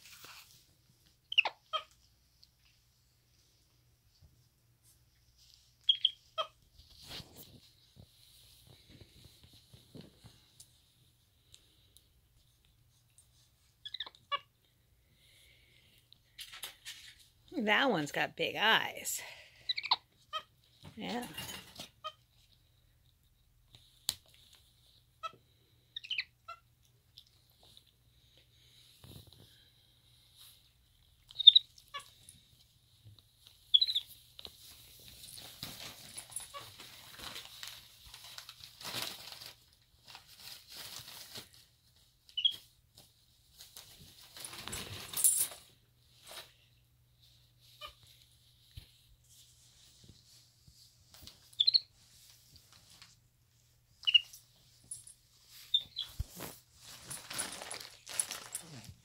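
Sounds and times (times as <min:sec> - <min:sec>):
paper rustling and crinkling: 0:00.0 - 0:01.0, 0:06.7 - 0:11.0, 0:33.3 - 0:46.6, 0:54.7 - 0:59.0
monkey squeaking: 0:01.3 - 0:01.9, 0:05.9 - 0:06.6, 0:13.8 - 0:14.5, 0:19.7 - 0:20.5, 0:26.0 - 0:26.6, 0:31.3 - 0:32.2, 0:33.7 - 0:34.1, 0:51.6 - 0:51.9, 0:54.0 - 0:54.3, 0:55.7 - 0:56.2.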